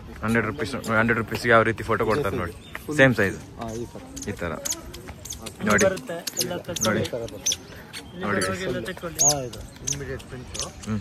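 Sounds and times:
people talking: 0:00.2 - 0:11.0.

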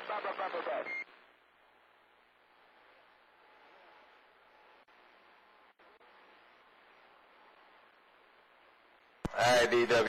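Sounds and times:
voice over radio: 0:00.0 - 0:01.0, 0:09.3 - 0:10.0.

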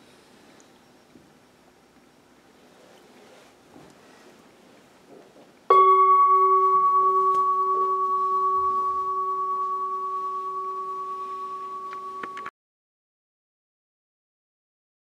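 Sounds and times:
metal singing bowl ringing: 0:05.7 - 0:12.5.

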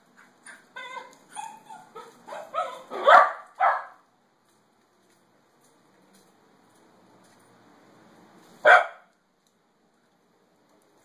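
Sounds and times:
dog barking: 0:02.3 - 0:04.0, 0:08.6 - 0:09.1.

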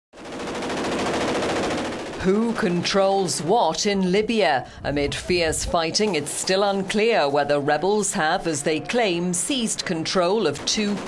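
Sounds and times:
machine gun automatic fire: 0:00.2 - 0:03.6, 0:09.7 - 0:11.0.

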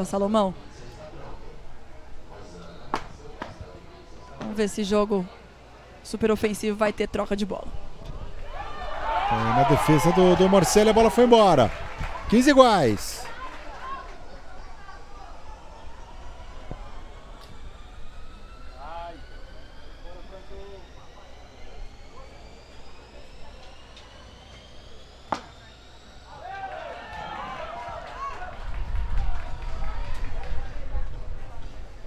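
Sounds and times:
distant voices: 0:00.0 - 0:32.0
faint rising tone: 0:14.2 - 0:27.6.

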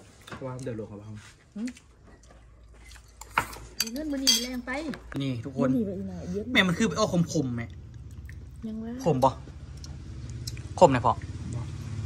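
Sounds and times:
metal spoon clinking bowl: 0:03.2 - 0:04.6.

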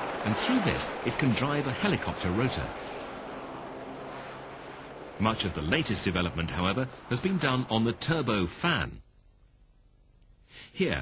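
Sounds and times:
helicopter rotor and turbine: 0:00.0 - 0:08.8
low hum: 0:00.0 - 0:10.5.

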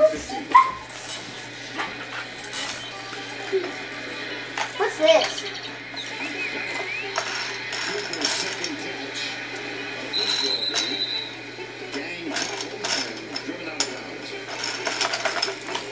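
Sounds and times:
faint background voices: 0:00.0 - 0:15.9.

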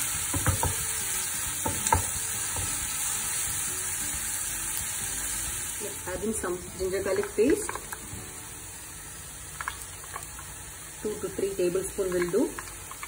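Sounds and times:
onions sizzling in hot oil: 0:00.0 - 0:13.0
spatula knocking against pan: 0:00.3 - 0:00.8.

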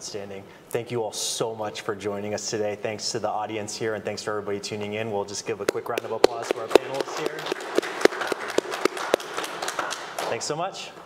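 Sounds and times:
individual hand claps: 0:05.7 - 0:10.5
audience applauding: 0:05.8 - 0:10.5.

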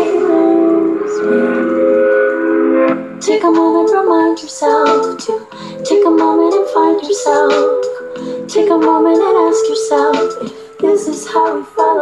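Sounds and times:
instrumental music holding chord: 0:00.0 - 0:10.8.

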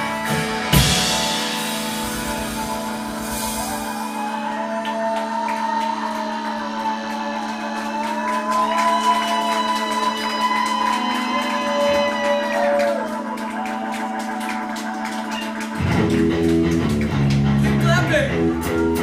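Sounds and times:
rock band playing: 0:00.0 - 0:19.0.

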